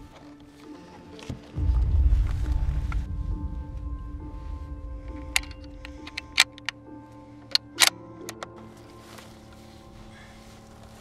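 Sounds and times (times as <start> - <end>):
background music: 0.0 - 11.0
rifle bolt metallic clicks: 5.1 - 6.8, 7.4 - 8.5.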